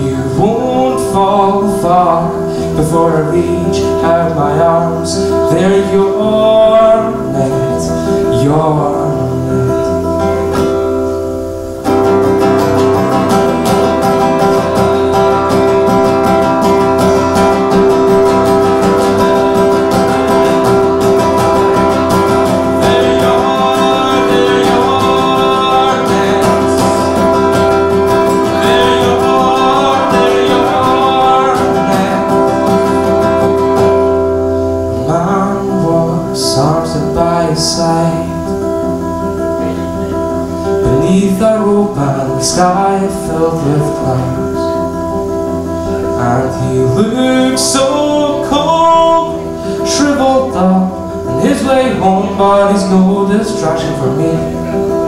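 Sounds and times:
acoustic guitar strumming: 0.0 - 55.0
person singing: 0.0 - 55.0.

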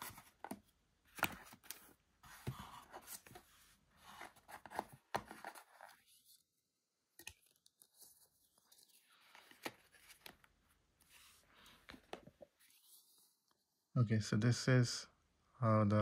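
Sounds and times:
paper and cardboard rustling: 0.0 - 6.5, 7.4 - 13.2.

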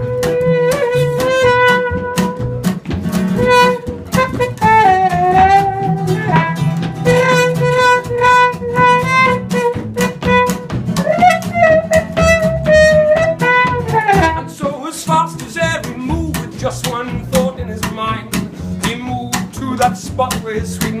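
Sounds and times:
trumpet holding long notes: 0.0 - 2.5, 3.4 - 14.5
low bass line: 0.0 - 21.0
strummed acoustic guitar: 0.0 - 21.0.

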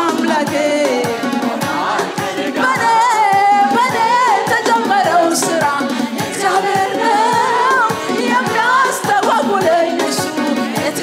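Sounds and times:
group singing worship song: 0.0 - 11.0
steady beat: 0.0 - 11.0.

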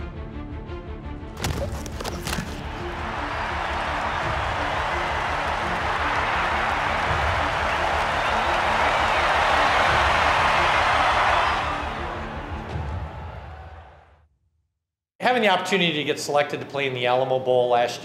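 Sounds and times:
background music with steady beat: 0.0 - 14.1
stadium crowd cheering: 2.0 - 14.2.

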